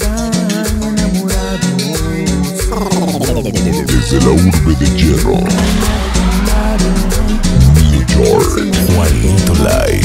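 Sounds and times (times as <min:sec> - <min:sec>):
cumbia dance music with heavy bass: 0:00.0 - 0:10.0.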